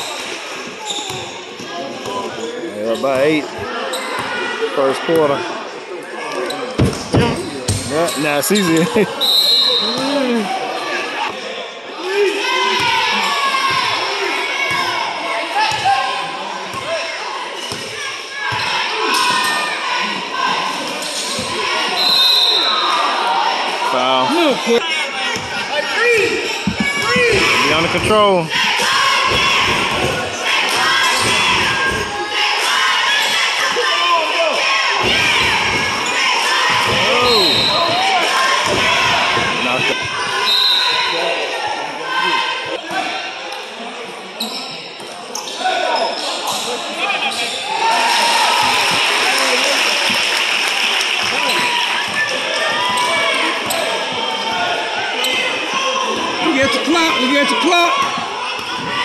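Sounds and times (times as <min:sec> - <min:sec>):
spectators' voices and shouts: 0:00.0 - 0:59.0.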